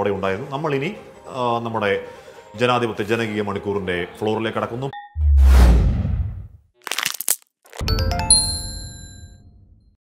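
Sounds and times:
deep whoosh: 5.2s - 6.6s
bright bell-like chime: 7.8s - 9.5s.

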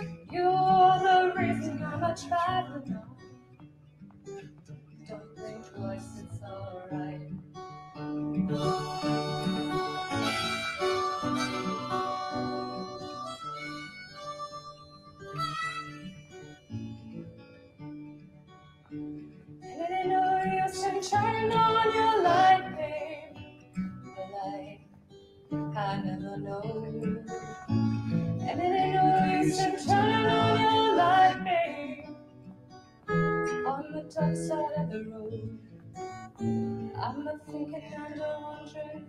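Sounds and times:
acoustic guitar playing: 0.0s - 39.0s
person singing: 8.5s - 13.7s, 19.8s - 23.4s, 25.8s - 27.6s, 28.5s - 32.1s, 33.6s - 35.6s
harmonica solo: 8.5s - 17.2s, 29.3s - 31.1s.

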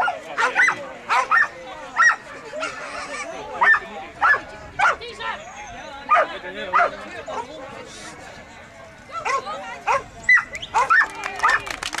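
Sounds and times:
dog barking excitedly: 0.0s - 2.2s, 3.6s - 5.0s, 9.2s - 11.7s.

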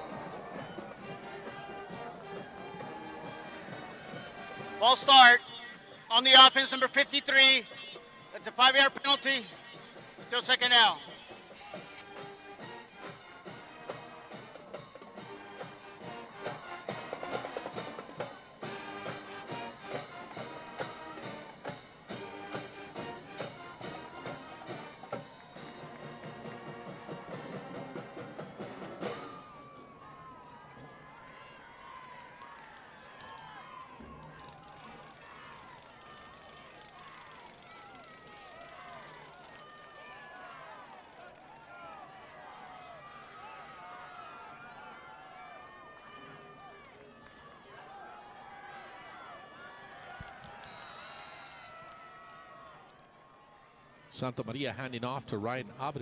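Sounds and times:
crowd murmuring: 0.0s - 12.4s
music with steady beat: 0.0s - 29.3s.

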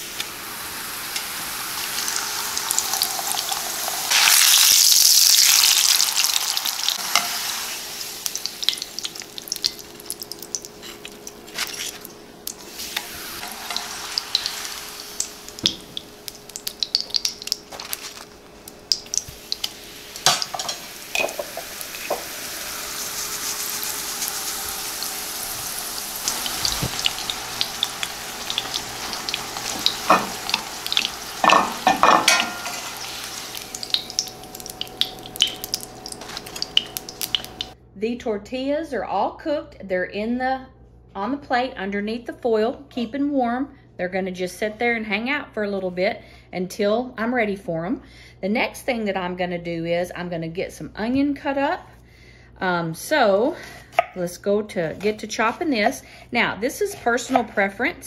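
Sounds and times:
tortillas sizzling in hot oil: 0.0s - 37.8s
metal tongs tapping a pan: 29.6s - 32.9s.

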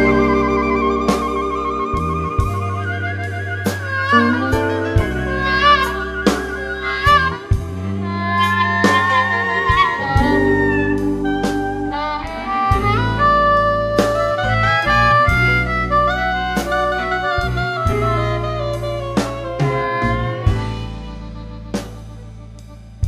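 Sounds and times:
bass line: 0.0s - 23.0s
blues lead melody: 0.0s - 23.0s
drum beat: 3.9s - 8.0s, 8.6s - 11.9s.

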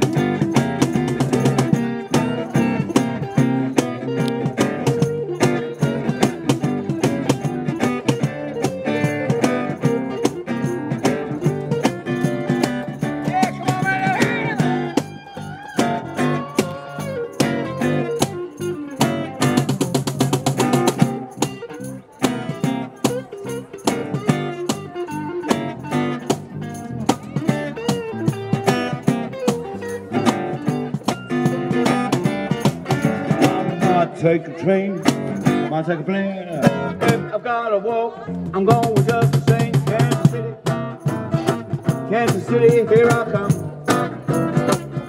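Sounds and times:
electric guitar lead lines: 0.0s - 37.4s
acoustic bass guitar: 0.0s - 45.0s
acoustic guitar: 0.0s - 45.0s
cajon beat: 0.0s - 45.0s.

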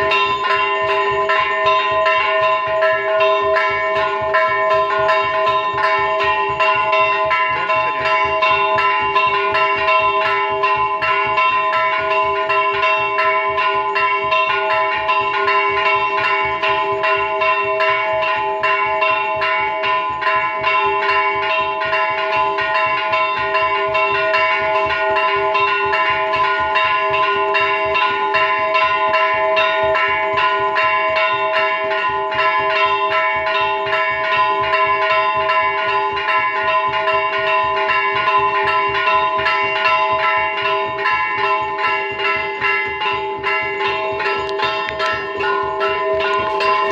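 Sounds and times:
metal bells ringing rapidly: 0.0s - 46.9s.

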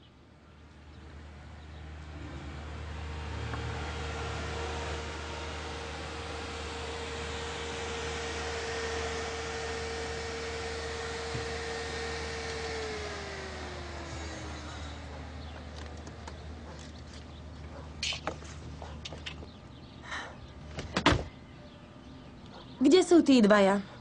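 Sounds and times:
small car engine running: 0.6s - 21.8s.

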